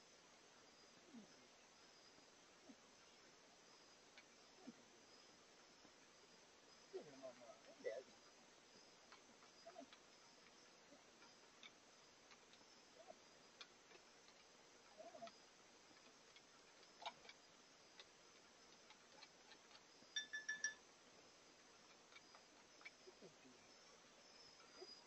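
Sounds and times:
high insect chirring: 0.6s - 25.0s
ringing clinks: 20.1s - 20.8s.

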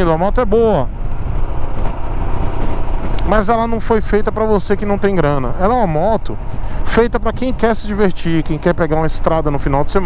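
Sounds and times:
motorcycle engine running: 0.0s - 10.0s
wind rush on microphone: 0.0s - 10.0s.

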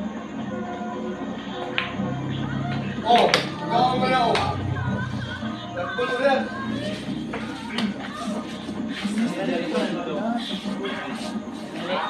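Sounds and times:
background music: 0.0s - 12.0s
pool cue striking ball: 3.1s - 3.6s.

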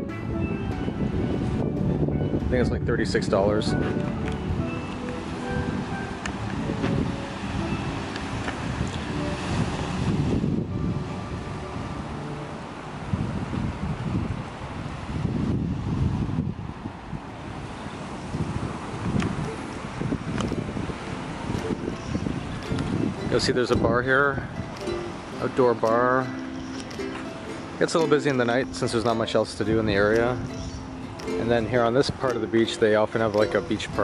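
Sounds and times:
surf washing: 0.0s - 34.0s
wind buffeting microphone: 0.0s - 34.0s.

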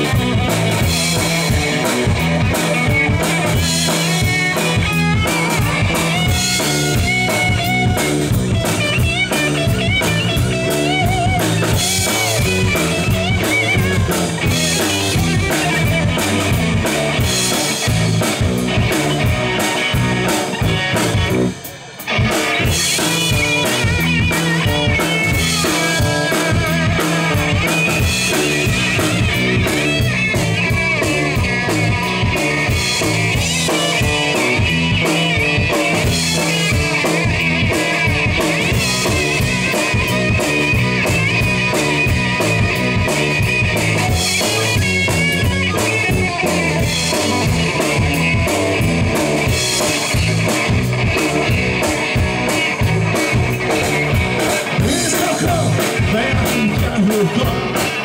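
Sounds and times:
bass guitar: 0.0s - 58.0s
drum kit: 0.0s - 58.0s
electric guitar: 0.0s - 58.0s.

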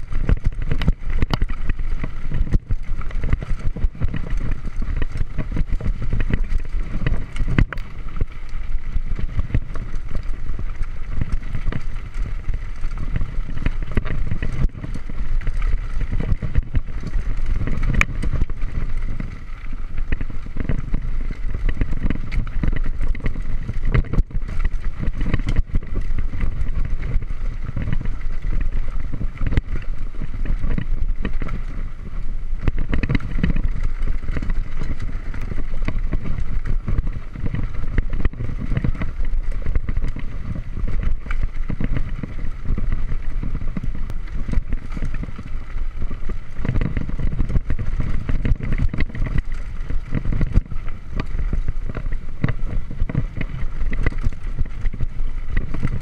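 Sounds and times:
bike tyres rattling over stones: 0.0s - 56.0s
wind rumble on microphone: 0.0s - 56.0s.

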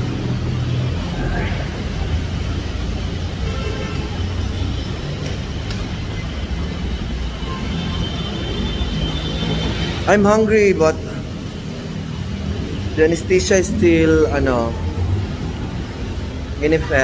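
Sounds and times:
rumble of passing vehicles: 0.0s - 17.0s
faint higher tones: 13.3s - 15.0s.

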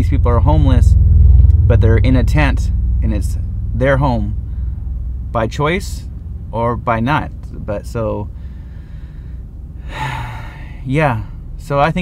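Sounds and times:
steady low hum: 0.0s - 12.0s
man sighing breath: 8.4s - 10.9s.

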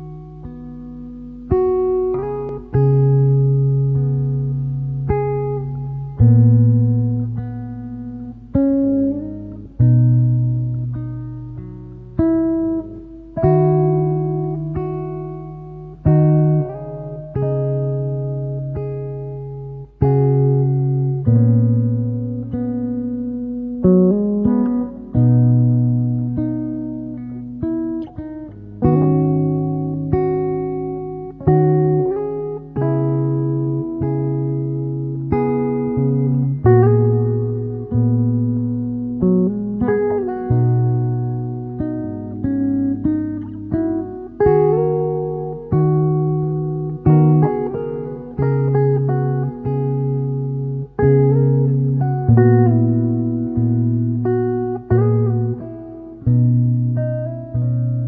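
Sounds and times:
acoustic guitar lullaby: 0.0s - 58.0s.

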